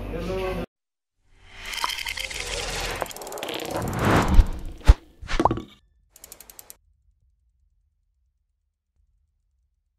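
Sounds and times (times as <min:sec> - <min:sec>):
ratchet-like clicking: 0:01.6 - 0:05.0, 0:06.2 - 0:06.8.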